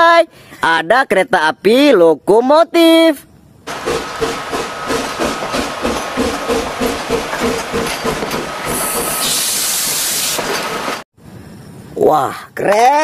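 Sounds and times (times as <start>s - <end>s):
steam hissing: 3.7s - 11.0s
steam locomotive chuffing: 3.7s - 11.0s.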